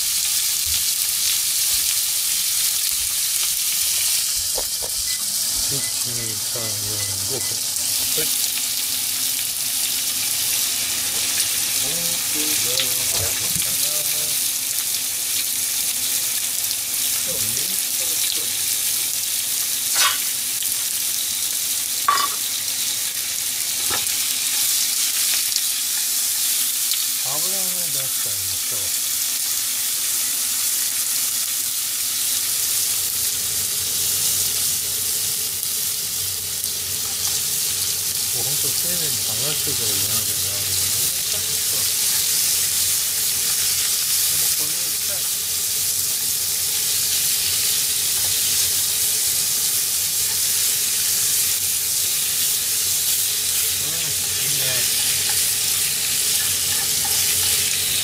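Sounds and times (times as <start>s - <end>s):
pork sizzling in a frying pan: 0.0s - 58.0s.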